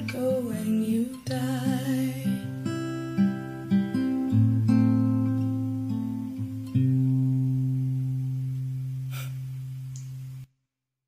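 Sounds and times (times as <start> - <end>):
acoustic guitar chord ringing: 0.0 - 9.7.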